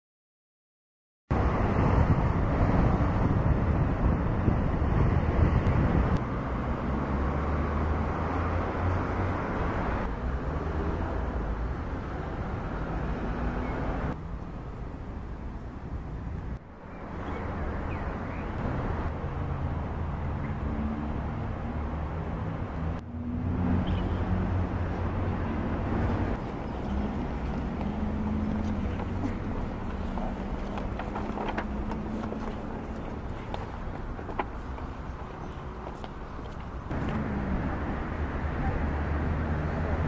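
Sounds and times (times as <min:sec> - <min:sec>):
distant road traffic: 0:01.3 - 0:40.0.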